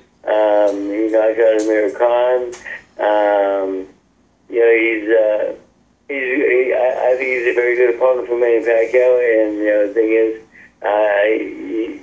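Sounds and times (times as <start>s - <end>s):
man speaking over telephone line: 0.2s - 3.9s, 4.5s - 12.0s.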